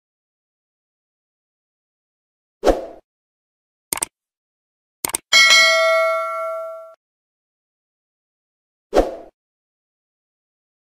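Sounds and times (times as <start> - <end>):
notification bell chime: 5.4 - 7.0.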